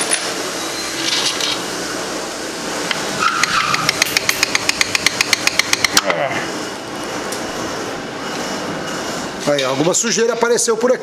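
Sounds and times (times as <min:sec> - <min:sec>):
steady rushing mechanical noise: 0:00.0 - 0:11.0.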